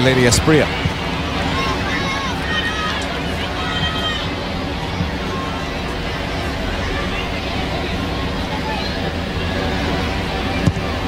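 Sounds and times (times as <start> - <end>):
murmur of stadium crowd: 0.0 - 11.0.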